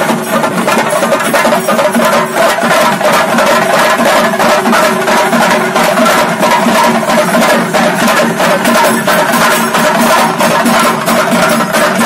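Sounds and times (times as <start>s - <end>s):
drum ensemble beating fast: 0.0s - 12.0s.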